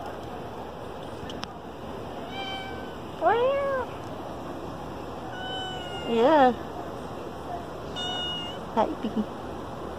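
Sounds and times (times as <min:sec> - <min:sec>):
cat meowing: 0:02.2 - 0:03.9, 0:05.3 - 0:06.3, 0:07.9 - 0:08.6.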